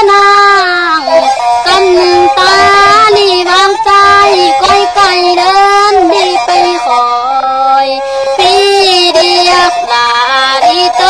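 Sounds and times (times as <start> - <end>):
woman singing long notes: 0.0 - 11.0.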